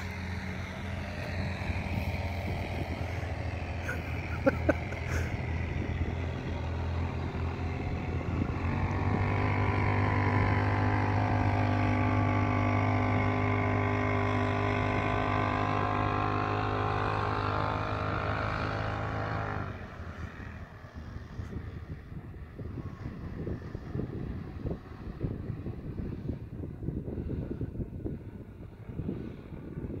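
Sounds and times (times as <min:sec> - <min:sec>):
wind buffeting microphone: 0:00.0 - 0:16.6, 0:19.8 - 0:30.0
vehicle engine running: 0:00.0 - 0:30.0.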